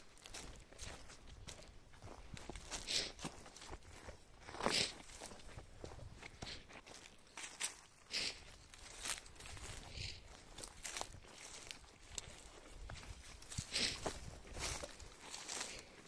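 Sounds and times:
footsteps crunching dry leaves: 0.0 - 16.0
brush rustling: 0.2 - 16.0.

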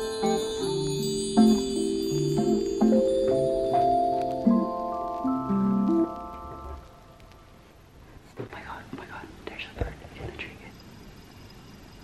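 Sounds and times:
woman whispering: 8.4 - 10.8.

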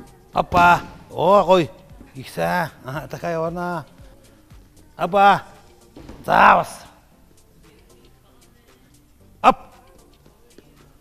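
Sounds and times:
man shouting: 0.4 - 3.8, 5.0 - 5.5, 6.2 - 7.0, 9.4 - 9.8.

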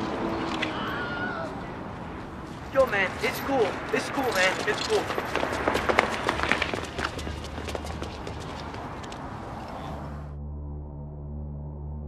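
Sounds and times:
running footsteps on pavement: 0.0 - 10.2
low city hum: 0.0 - 12.0.

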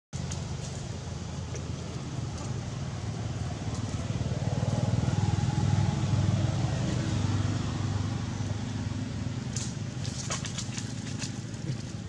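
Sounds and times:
vehicle engine rumbling: 0.1 - 12.0.

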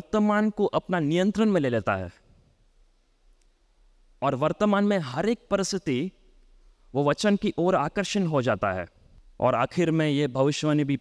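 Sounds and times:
man speaking into a microphone: 0.0 - 2.3, 4.2 - 11.0
faint click: 3.4 - 3.6.

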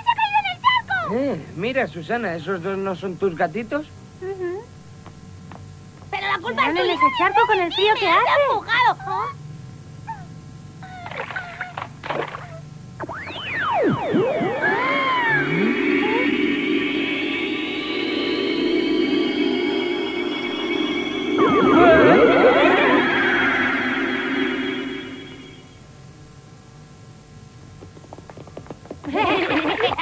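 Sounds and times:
swooping whistle-like glides: 13.0 - 25.7
shimmering sustained chord: 13.8 - 25.8.

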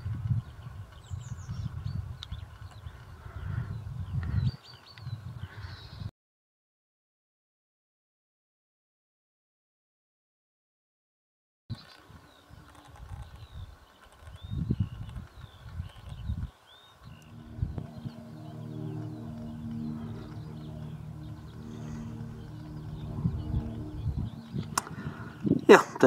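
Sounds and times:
small birds chirping: 0.0 - 6.1, 11.7 - 25.7
wind rumbling on microphone: 0.0 - 6.1, 11.7 - 26.0
steady low hum: 17.0 - 26.0.

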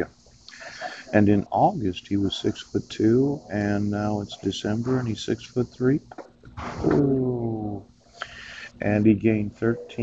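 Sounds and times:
man saying uhh: 0.0 - 6.0, 6.8 - 10.0
man speaking: 0.0 - 6.1, 6.8 - 10.0
short hiss: 0.0 - 7.0, 8.1 - 8.8.

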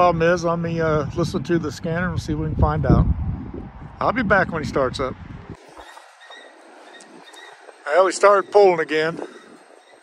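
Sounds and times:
wind rumble on microphone: 0.0 - 10.0
freight train rolling past: 5.6 - 10.0.

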